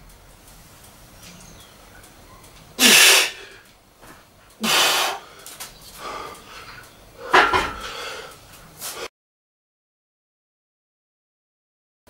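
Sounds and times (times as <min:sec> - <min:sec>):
man grunting and exhaling forcefully: 0:02.8 - 0:03.5, 0:04.6 - 0:05.2.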